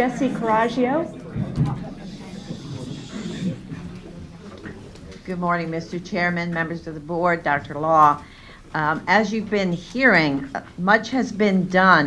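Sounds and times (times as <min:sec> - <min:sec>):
faint indistinct voices: 0:00.0 - 0:08.2.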